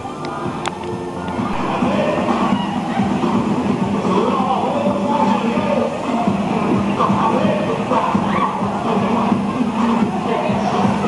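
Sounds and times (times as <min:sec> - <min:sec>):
echoing exercise music: 0:00.0 - 0:11.0.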